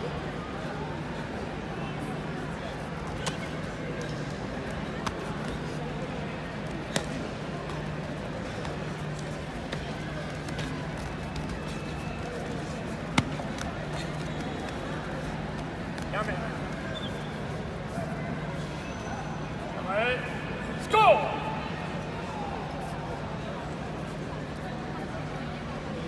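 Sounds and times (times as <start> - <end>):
scattered voices in a hall: 0.0 - 26.0.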